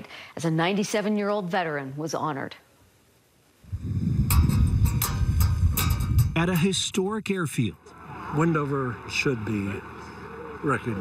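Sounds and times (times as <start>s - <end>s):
wind buffeting microphone: 3.6s - 7.4s.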